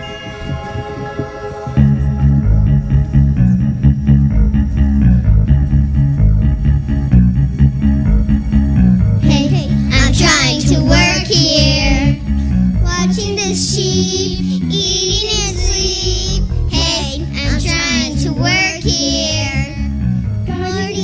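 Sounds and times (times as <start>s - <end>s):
instrumental accompaniment with bass: 0.0s - 21.0s
children singing: 9.2s - 12.2s, 12.9s - 19.9s.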